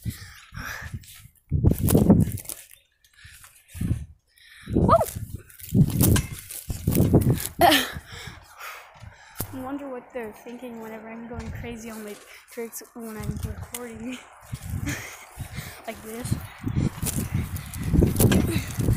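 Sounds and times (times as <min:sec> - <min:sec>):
boy exclaiming and breathing: 0:04.6 - 0:05.2, 0:18.3 - 0:18.9
trampoline bouncing: 0:04.8 - 0:18.9.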